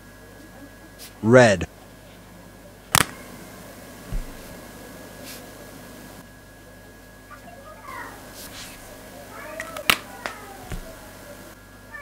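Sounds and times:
loud sharp click: 0:02.9 - 0:03.2.

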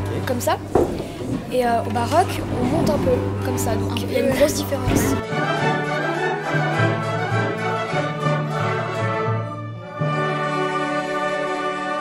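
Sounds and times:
bowed strings: 0:00.0 - 0:12.0.

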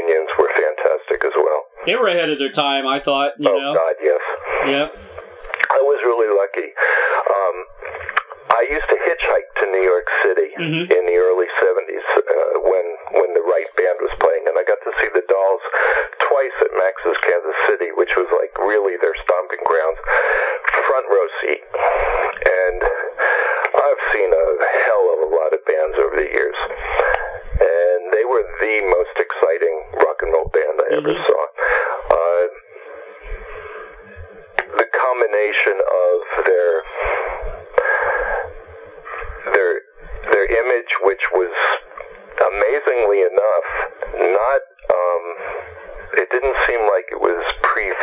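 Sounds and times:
man talking over telephone: 0:00.0 - 0:07.8, 0:08.5 - 0:23.1, 0:23.7 - 0:26.8, 0:27.6 - 0:32.6, 0:34.6 - 0:37.0, 0:39.4 - 0:45.4, 0:46.1 - 0:48.0.

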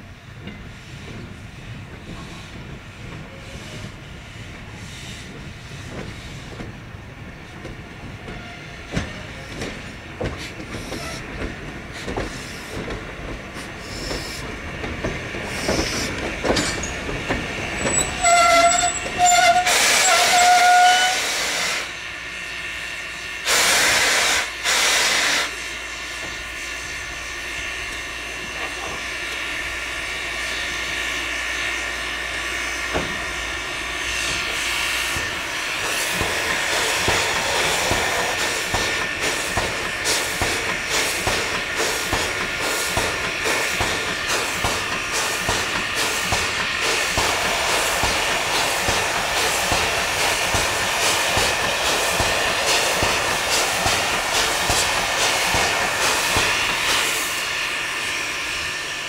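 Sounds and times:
steam locomotive clanking: 0:00.1 - 0:59.0
steam hissing: 0:08.6 - 0:59.0
locomotive toots: 0:17.8 - 0:21.3.

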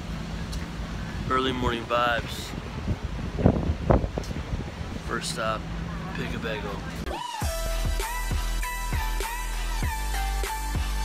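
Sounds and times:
street noise: 0:00.0 - 0:11.0
wind buffeting microphone: 0:00.2 - 0:07.0.

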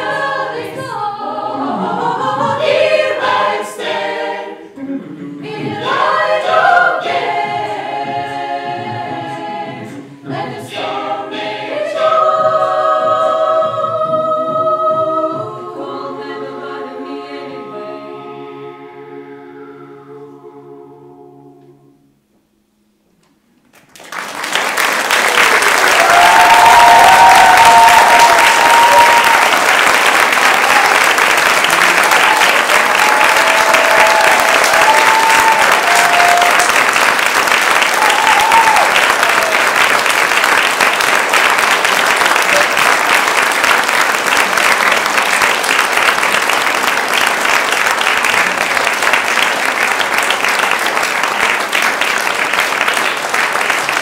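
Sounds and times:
audience applauding: 0:23.7 - 0:54.0.

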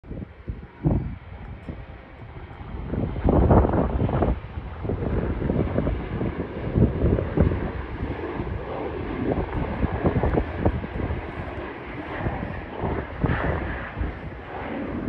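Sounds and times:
jet engine noise: 0:00.0 - 0:15.0
wind buffeting microphone: 0:00.0 - 0:15.0.

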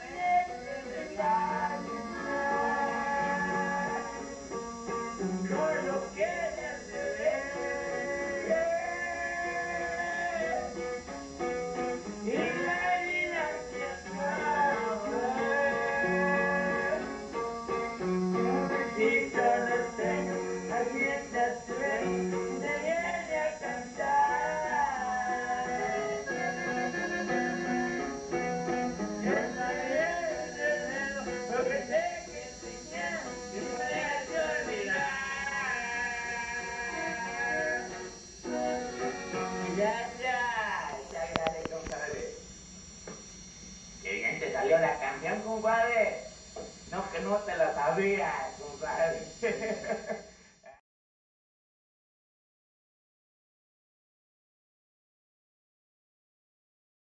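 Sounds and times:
plucked guitar: 0:00.0 - 0:35.6
button accordion melody: 0:00.0 - 0:40.3.

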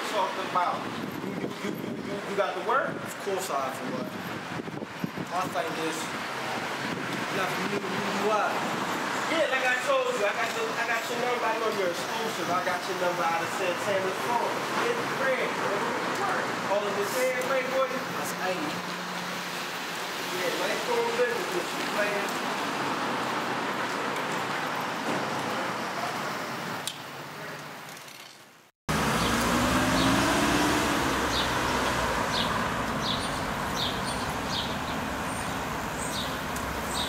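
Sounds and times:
traffic: 0:00.0 - 0:37.0
rising and falling engine tone: 0:28.9 - 0:33.9.

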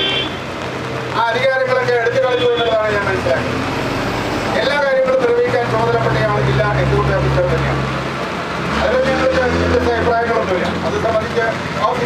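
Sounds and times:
road traffic rushing: 0:00.0 - 0:12.0
man speaking into a microphone: 0:01.1 - 0:03.6, 0:04.5 - 0:07.9, 0:08.7 - 0:12.0.

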